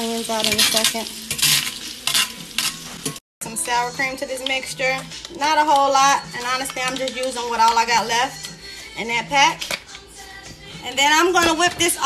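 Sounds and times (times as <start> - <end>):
onions and garlic sizzling in butter: 0.0 - 5.2
utensil stirring and scraping: 0.5 - 3.2.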